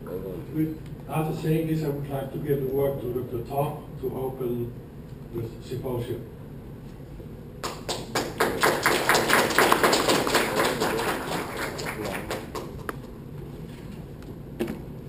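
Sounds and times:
audience clapping: 7.6 - 13.0.

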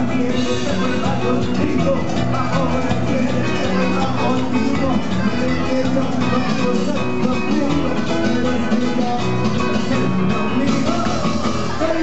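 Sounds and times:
live band music through loudspeakers: 0.0 - 12.0.

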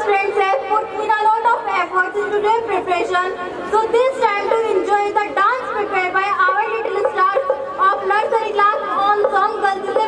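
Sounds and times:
girl speaking into microphone: 0.0 - 10.0.

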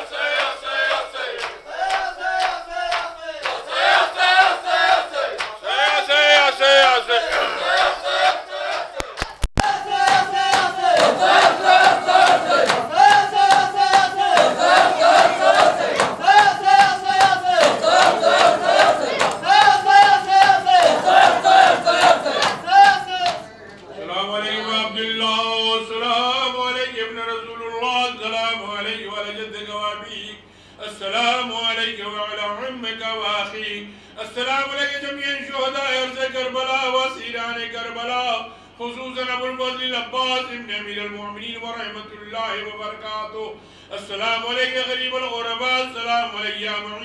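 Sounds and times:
men chanting together: 0.0 - 26.5.

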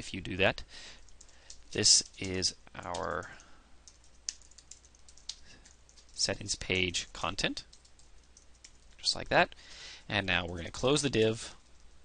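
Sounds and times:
keyboard typing: 3.8 - 9.1.

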